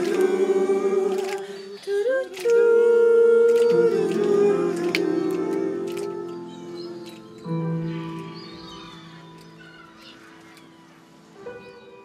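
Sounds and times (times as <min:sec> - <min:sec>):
voices singing a cappella: 0:00.0 - 0:07.2.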